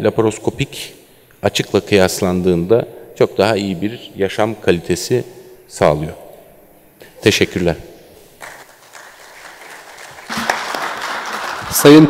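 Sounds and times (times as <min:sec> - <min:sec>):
audience applauding: 0:08.4 - 0:12.0.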